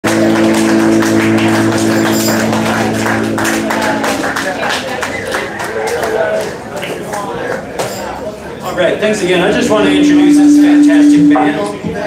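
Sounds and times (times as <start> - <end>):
held band chord: 0.1 - 4.4, 9.7 - 11.9
percussion strokes: 9.7 - 12.0.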